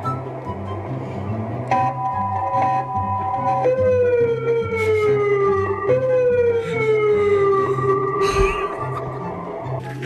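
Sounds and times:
wailing siren over loudspeaker: 1.7s - 9.8s.

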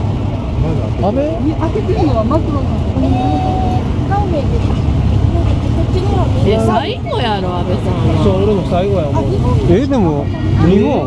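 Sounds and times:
bystanders talking: 0.0s - 11.0s
motorcycle and car engines rumbling: 0.0s - 11.0s.

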